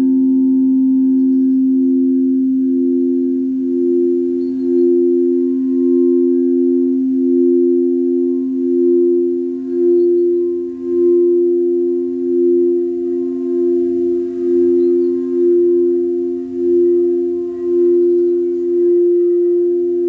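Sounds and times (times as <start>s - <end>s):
crystal singing bowls tones: 0.0s - 20.0s.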